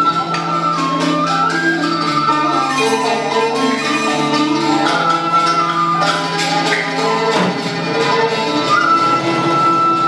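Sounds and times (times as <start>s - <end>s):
instrumental ensemble music: 0.0s - 10.0s.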